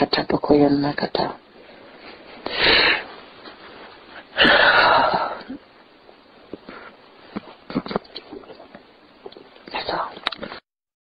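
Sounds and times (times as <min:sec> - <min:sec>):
woman breathing heavily: 0:02.4 - 0:03.1, 0:04.1 - 0:05.6.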